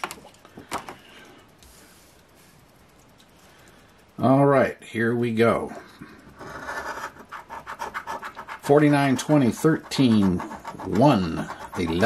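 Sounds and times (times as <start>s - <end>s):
coin scratching lottery ticket: 6.4s - 12.0s.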